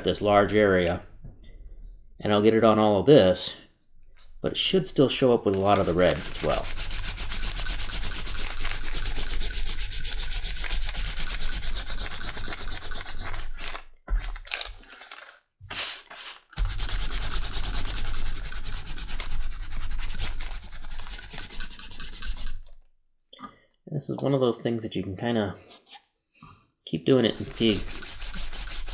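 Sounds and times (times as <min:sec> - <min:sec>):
cloth block rubbing on leather: 0:05.8 - 0:13.8, 0:16.6 - 0:22.6, 0:27.3 - 0:28.9.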